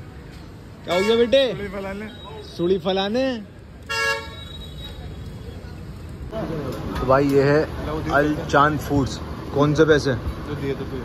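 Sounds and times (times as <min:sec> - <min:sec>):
street traffic hum: 0:00.0 - 0:11.0
vehicle horn toot: 0:03.9 - 0:05.0.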